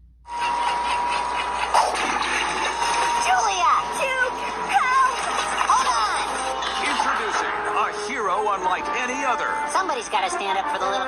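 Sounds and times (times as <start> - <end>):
thin high tone: 0.3 - 9.6
trailer music: 0.3 - 11.0
voices: 2.2 - 11.0.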